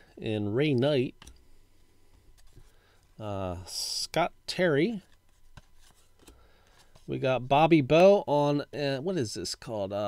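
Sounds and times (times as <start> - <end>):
cardboard cards rustling: 2.2 - 2.9, 4.9 - 7.2.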